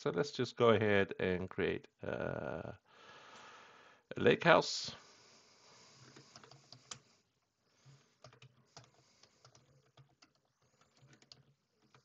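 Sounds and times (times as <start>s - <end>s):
typing on a computer keyboard: 6.0s - 7.0s, 7.8s - 12.0s.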